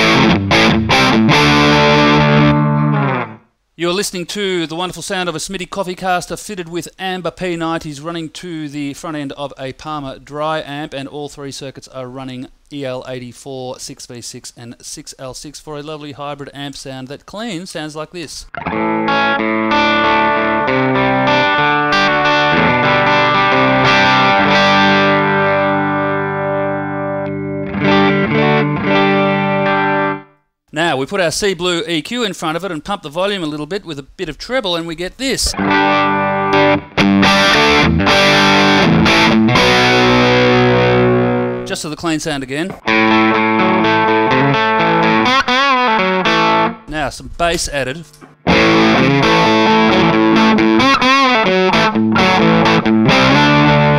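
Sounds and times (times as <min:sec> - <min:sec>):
clean electric guitar playing: 0:00.0 - 0:03.5, 0:18.4 - 0:30.3, 0:35.4 - 0:41.7, 0:42.7 - 0:46.9, 0:48.1 - 0:53.9.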